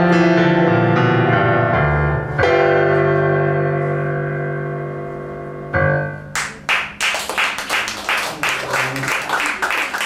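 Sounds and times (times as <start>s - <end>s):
piano playing slow chords: 0.0s - 7.0s.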